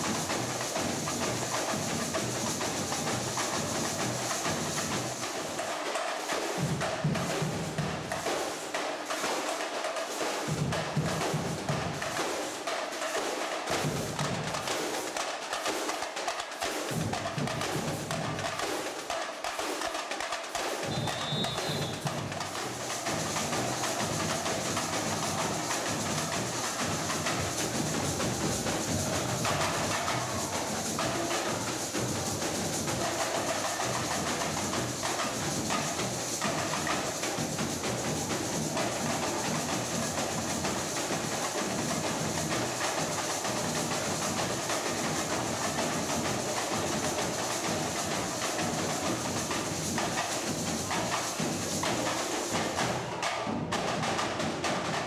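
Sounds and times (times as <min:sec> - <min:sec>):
samba percussion band drumming: 0:00.0 - 0:55.0.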